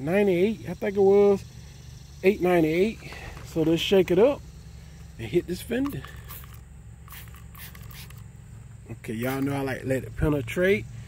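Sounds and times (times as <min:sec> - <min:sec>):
low background hum: 0:00.0 - 0:11.0
spray bottle hissing sprays: 0:05.8 - 0:08.2.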